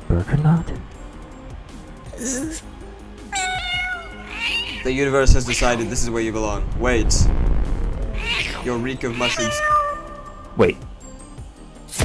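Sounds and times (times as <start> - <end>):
background music: 0.0 - 12.0
cat meowing: 3.3 - 4.9, 8.1 - 10.6.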